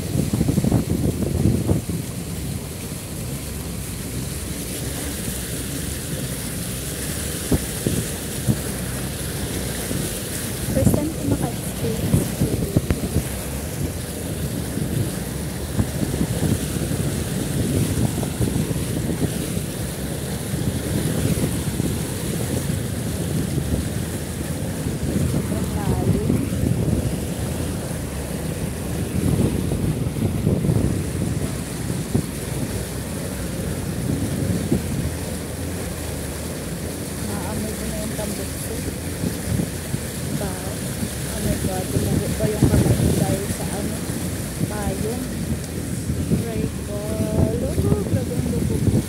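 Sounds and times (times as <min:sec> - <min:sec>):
floodwater surging and splashing: 0:00.0 - 0:49.0.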